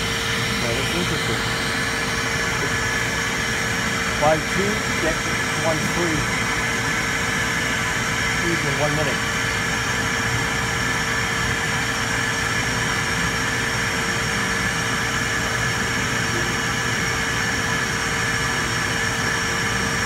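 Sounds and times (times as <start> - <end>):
key cutting machine whirring: 0.0 - 20.0.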